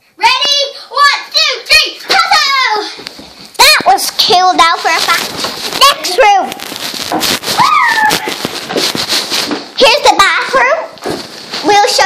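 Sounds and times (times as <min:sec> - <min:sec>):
bumps and rustles on phone: 0:03.0 - 0:09.8, 0:11.0 - 0:12.0
girls squealing and laughing: 0:07.5 - 0:08.5.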